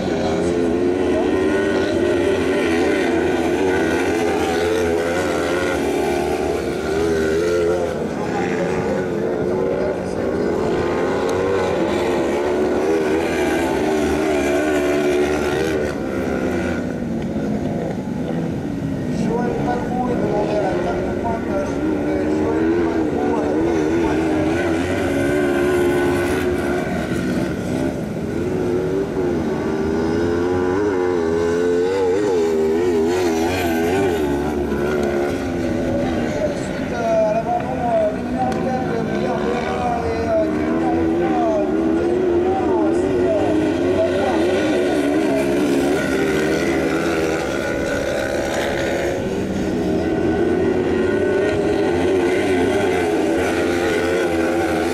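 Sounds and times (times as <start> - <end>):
buggy engines racing: 0.0 - 54.9.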